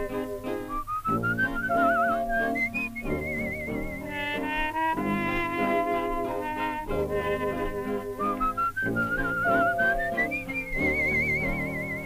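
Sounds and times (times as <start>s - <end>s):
whistled melody with trills: 0.0s - 12.0s
dance orchestra accompaniment: 1.6s - 12.0s.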